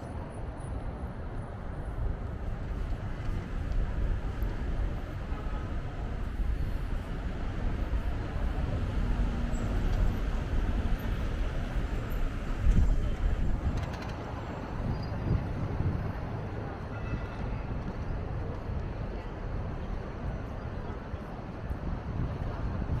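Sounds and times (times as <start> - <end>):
low rumble of road traffic: 0.0 - 23.0.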